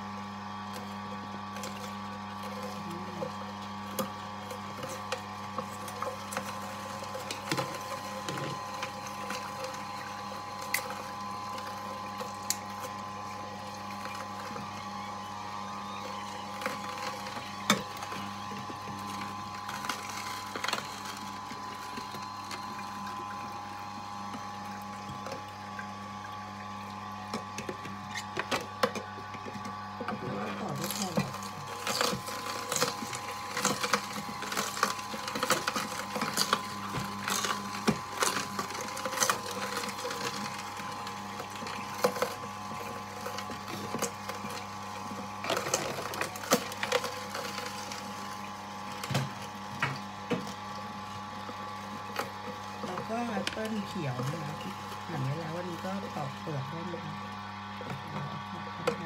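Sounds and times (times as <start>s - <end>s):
electric juicer humming: 0.0s - 59.0s
vegetables crunching and cracking: 27.3s - 53.7s.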